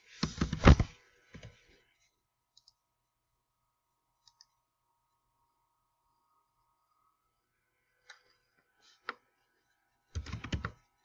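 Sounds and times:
computer mouse clicks: 2.5 - 2.8, 4.2 - 4.6.

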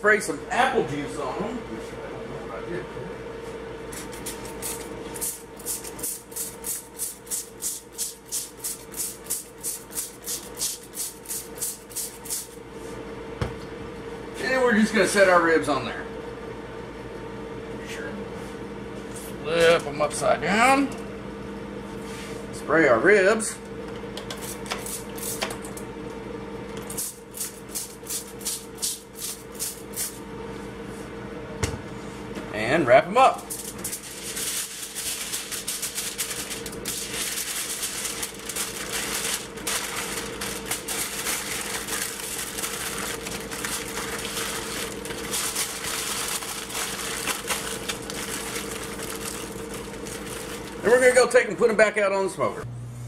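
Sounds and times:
steady hum: 0.0 - 53.0
spray bottle squirting onto foil: 4.2 - 12.6, 26.9 - 30.2, 33.5 - 49.4.

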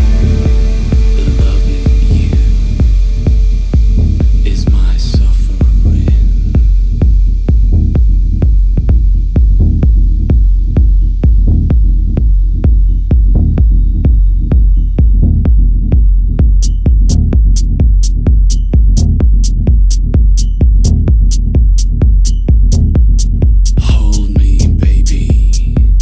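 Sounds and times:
hissing noise sweep: 0.0 - 7.0
deep kick drum pulse: 0.0 - 26.0
low hum: 0.0 - 26.0.

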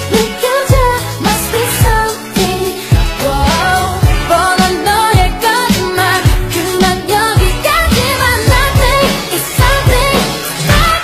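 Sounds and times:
pop song with singer: 0.0 - 11.0.

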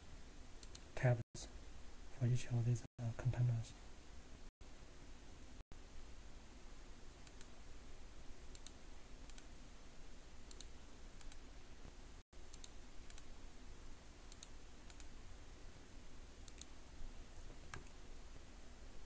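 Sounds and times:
low room hum: 0.0 - 19.0
computer mouse clicks: 0.6 - 0.9, 7.2 - 7.6, 8.5 - 9.5, 10.5 - 11.4, 12.5 - 13.3, 14.3 - 15.1, 16.4 - 16.8, 17.4 - 18.0.

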